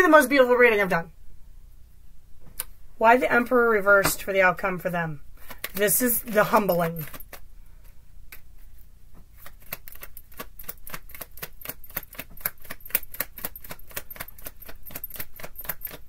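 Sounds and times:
cards being shuffled by hand: 5.4s - 16.0s.

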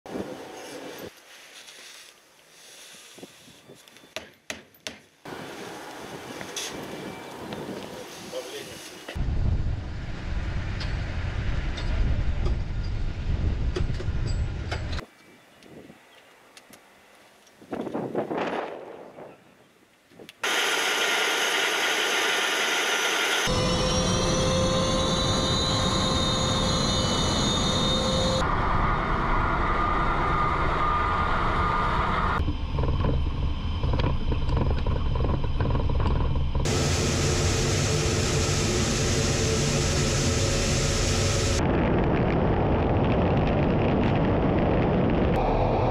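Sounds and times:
low rumble: 9.2s - 15.0s, 23.5s - 45.9s
jet engines roaring: 20.4s - 34.6s, 36.6s - 41.8s, 42.8s - 45.9s
high turbine whine: 20.4s - 45.9s
wind on microphone: 41.5s - 45.9s.

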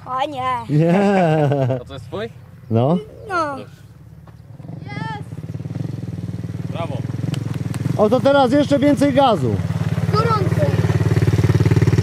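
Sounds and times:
quad bike engine running: 3.4s - 12.0s.

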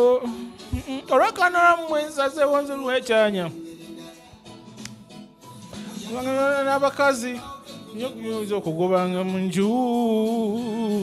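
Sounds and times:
man singing sustained notes: 5.9s - 11.0s.

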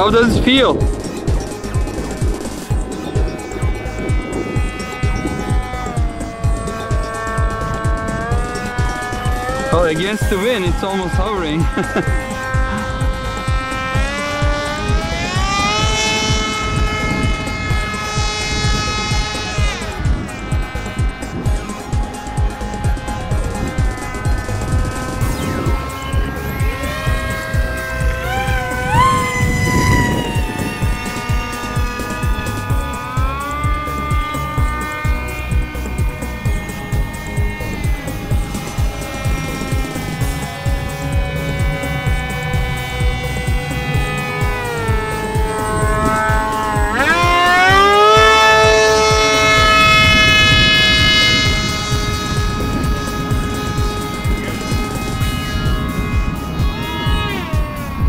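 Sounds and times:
electric motor propeller whine: 0.0s - 58.0s
wind rumble on microphone: 0.0s - 58.0s.

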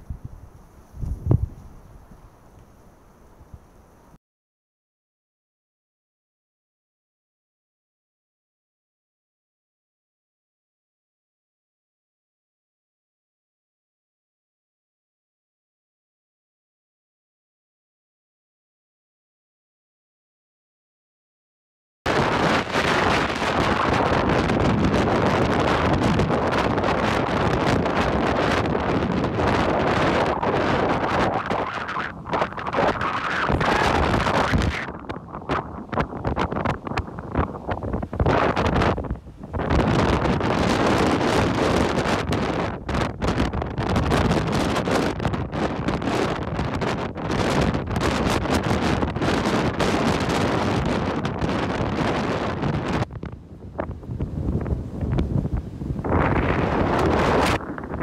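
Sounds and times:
gusty wind buffeting microphone: 0.0s - 2.6s, 22.1s - 58.0s
surf breaking: 22.1s - 58.0s.

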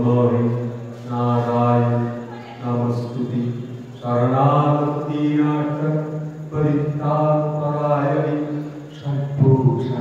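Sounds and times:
man chanting a mantra: 0.0s - 10.0s.

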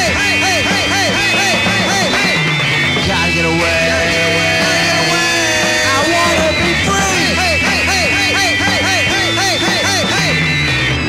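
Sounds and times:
garage rock band playing: 0.0s - 11.0s.

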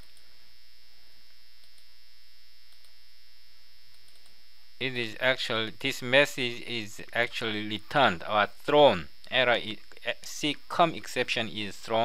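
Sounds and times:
mains hum and hiss: 0.0s - 12.0s
computer mouse clicks: 1.6s - 1.9s, 2.7s - 3.0s, 3.9s - 4.4s.

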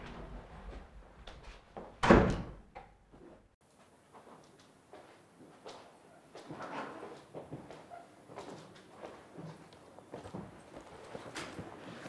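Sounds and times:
wooden door closing thud: 2.0s - 2.6s.

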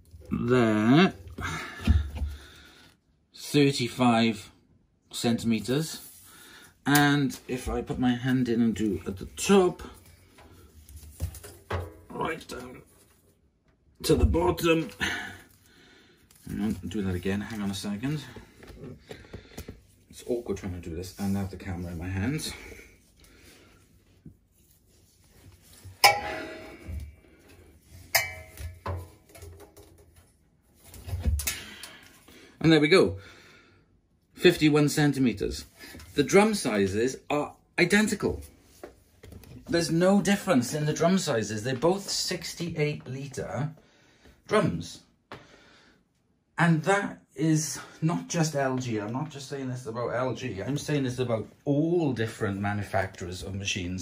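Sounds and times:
metal washing machine drum knocked: 28.2s - 29.3s.

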